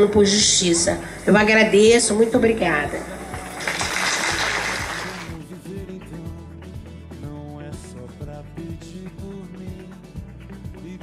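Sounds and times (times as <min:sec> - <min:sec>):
background music: 0:00.0 - 0:11.0
audience applause: 0:03.0 - 0:05.4.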